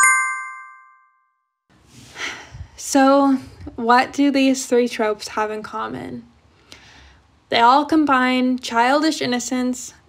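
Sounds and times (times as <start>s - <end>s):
bright chime: 0.0s - 1.3s.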